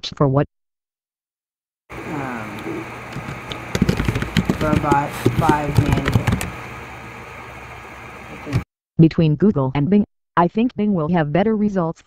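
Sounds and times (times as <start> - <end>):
keyboard keystrokes: 2.6 - 6.6.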